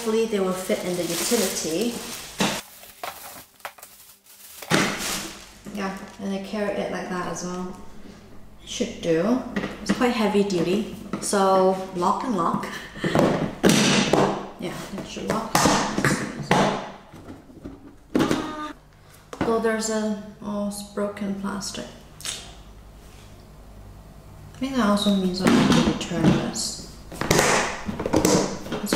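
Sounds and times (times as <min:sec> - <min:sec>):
plastic wrapping rustling: 0:00.0 - 0:06.5
plastic container handling: 0:00.6 - 0:06.2.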